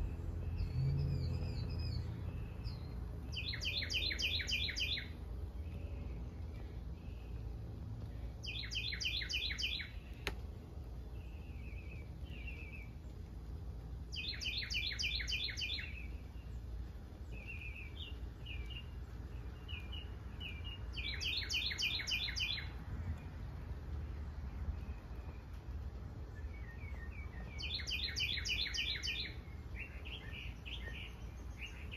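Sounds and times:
songbird singing: 0:00.0 - 0:31.9.

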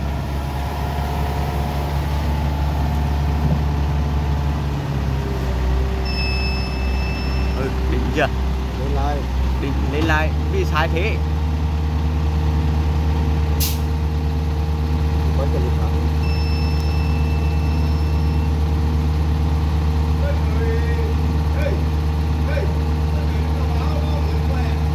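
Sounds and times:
diesel engine idling: 0:00.0 - 0:24.9
thin high steady tone: 0:06.0 - 0:07.8, 0:16.2 - 0:18.5.

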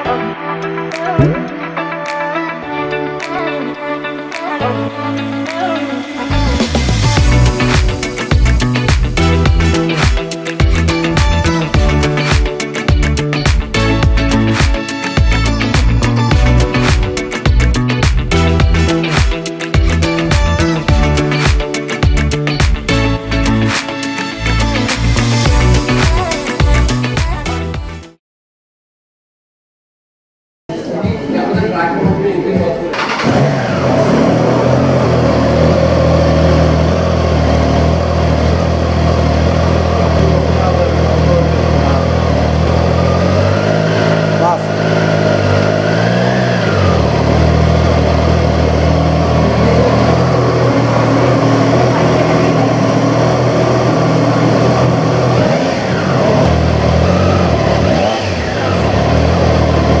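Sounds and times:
engine revving: 0:06.2 - 0:27.7, 0:32.9 - 1:00.0
motorcycle engine starting and idling: 0:32.9 - 1:00.0.

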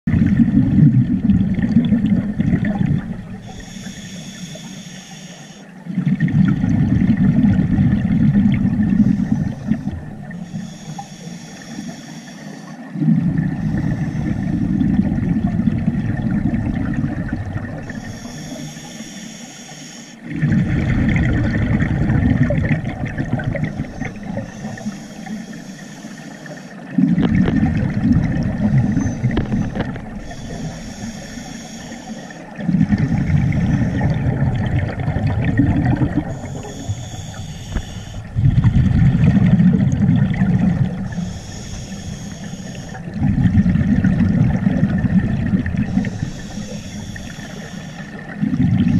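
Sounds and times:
low bubbling of exhaled air: 0:00.1 - 0:04.0, 0:05.9 - 0:11.1, 0:12.9 - 0:18.6, 0:20.2 - 0:25.4, 0:26.9 - 0:31.9, 0:32.5 - 0:48.9
regulator hissing inhale: 0:03.4 - 0:05.8, 0:08.8 - 0:15.0, 0:17.8 - 0:20.3, 0:23.4 - 0:26.9, 0:28.6 - 0:34.2, 0:36.1 - 0:38.4, 0:40.9 - 0:43.2, 0:45.8 - 0:48.4.

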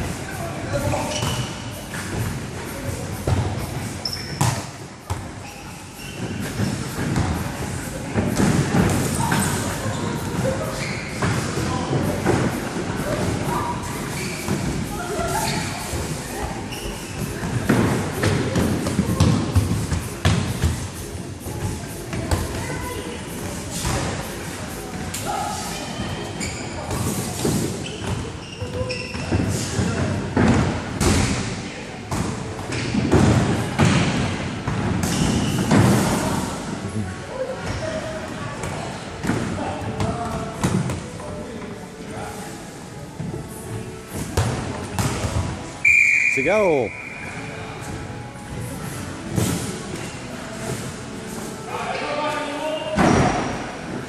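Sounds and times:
players shouting and chattering: 0:00.0 - 0:30.4.

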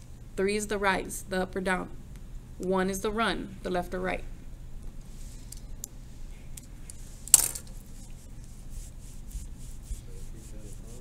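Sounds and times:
quick rubbing strokes: 0:07.0 - 0:11.0.

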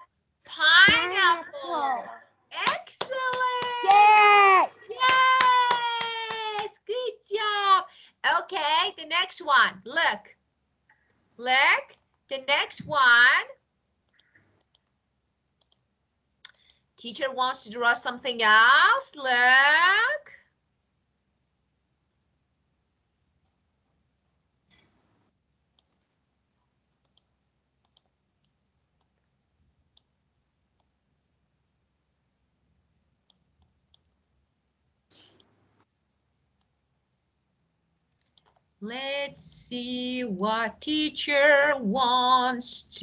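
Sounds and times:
computer mouse clicks: 0:14.1 - 0:15.0, 0:15.6 - 0:16.8, 0:27.0 - 0:29.3, 0:38.1 - 0:38.7.

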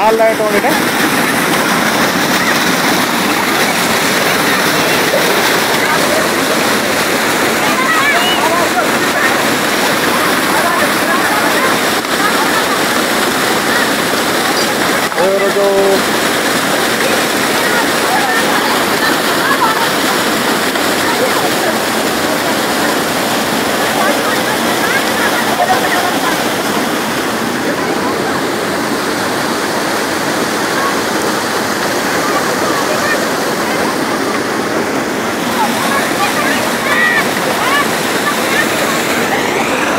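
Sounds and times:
faint voices: 0:00.0 - 0:39.9
flood water rushing: 0:00.0 - 0:39.9.

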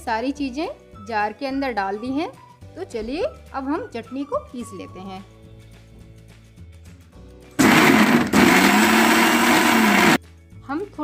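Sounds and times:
mixer grinder motor running: 0:07.6 - 0:10.2.

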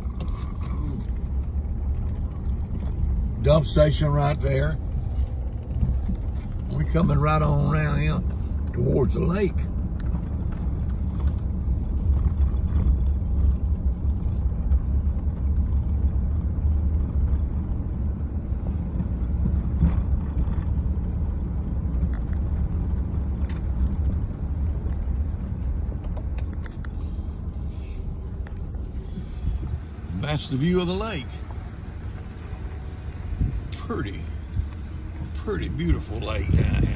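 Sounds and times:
tyres on paved road: 0:00.0 - 0:36.9
vehicle engine rumble: 0:00.0 - 0:36.9.

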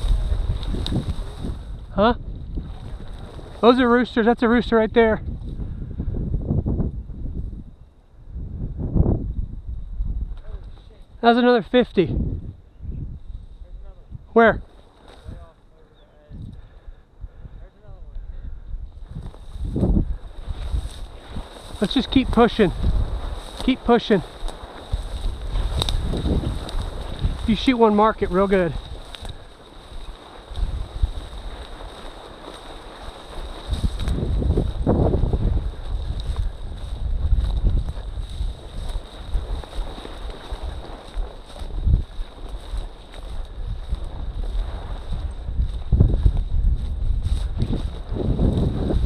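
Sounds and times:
brushing of dry grass: 0:00.0 - 0:01.8, 0:14.6 - 0:15.5, 0:19.0 - 0:49.0
wind noise on microphone: 0:00.0 - 0:49.0.

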